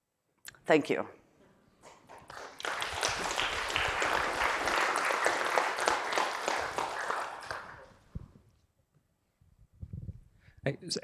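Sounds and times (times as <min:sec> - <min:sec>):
audience applauding: 0:01.9 - 0:08.1.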